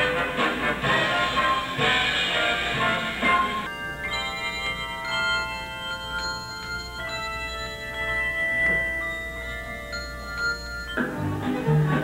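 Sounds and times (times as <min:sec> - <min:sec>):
handbell choir ringing: 0:03.7 - 0:12.0.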